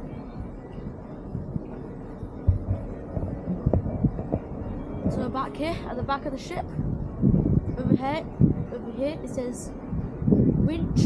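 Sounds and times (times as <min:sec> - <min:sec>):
wind buffeting microphone: 0:00.0 - 0:11.0
dull thumps: 0:02.4 - 0:05.3.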